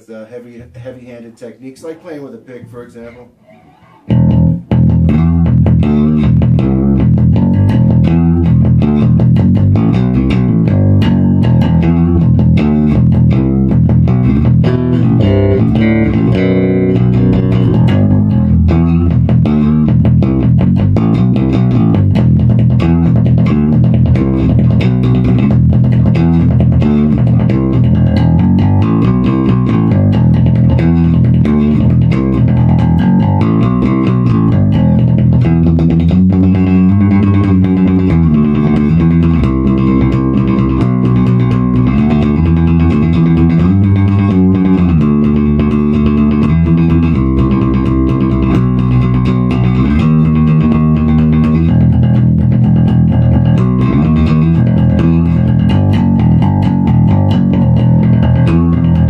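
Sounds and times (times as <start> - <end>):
bass guitar punchy low notes: 2.4 - 59.0.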